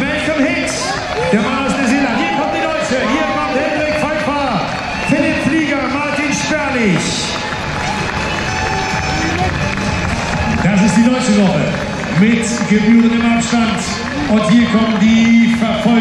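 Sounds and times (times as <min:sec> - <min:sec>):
crowd noise: 0:00.0 - 0:16.0
music: 0:06.2 - 0:16.0.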